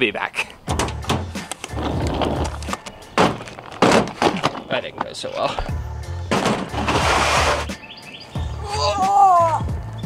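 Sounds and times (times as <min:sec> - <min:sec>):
background music with bass: 0:00.0 - 0:10.0
suitcase wheels rolling on pavement: 0:01.6 - 0:02.8.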